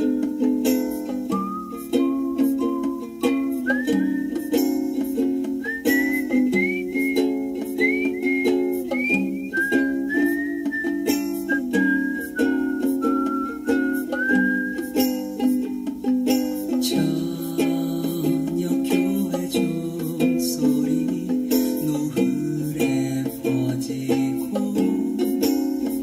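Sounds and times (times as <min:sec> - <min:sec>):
whistled melody: 0:00.0 - 0:15.8
plucked-string chords: 0:00.0 - 0:26.0.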